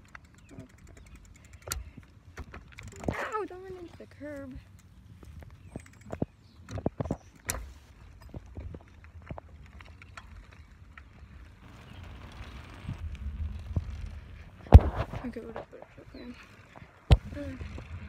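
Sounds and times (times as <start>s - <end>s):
bicycle frame clicks and rattles: 0.0s - 14.8s
low rumble: 10.4s - 18.0s.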